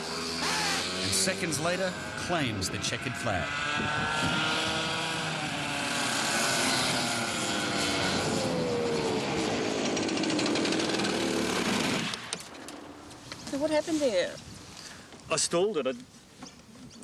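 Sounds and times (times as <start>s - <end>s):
go-kart engine running hard: 0.0s - 12.3s.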